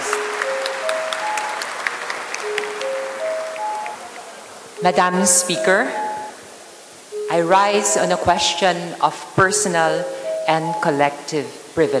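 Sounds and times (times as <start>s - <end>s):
scattered applause: 0.0s - 4.8s.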